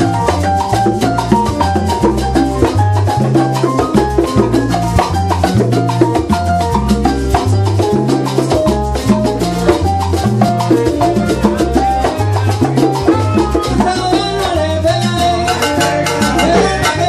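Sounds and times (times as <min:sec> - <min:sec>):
salsa band playing: 0:00.0 - 0:17.0.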